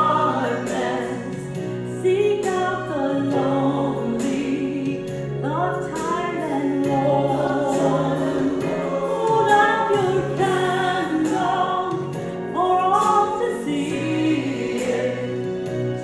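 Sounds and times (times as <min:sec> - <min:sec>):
woman singing: 0:00.0 - 0:15.4
low instrumental accompaniment: 0:00.0 - 0:16.0.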